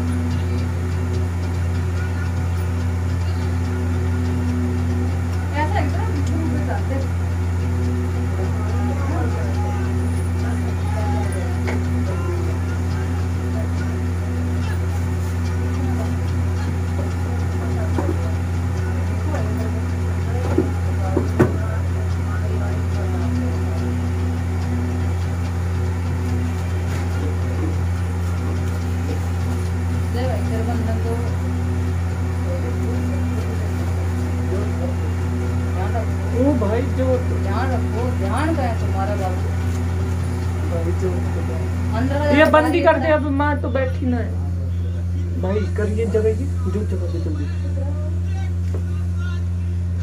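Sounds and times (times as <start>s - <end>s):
low machine hum: 0.0s - 50.0s
quiet murmuring voices: 0.0s - 50.0s.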